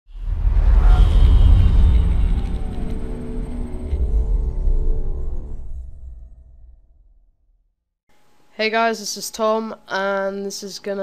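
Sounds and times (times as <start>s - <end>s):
falling whoosh: 0.1s - 7.0s
dark cinematic music: 0.1s - 7.6s
deep bass rumble: 0.1s - 7.7s.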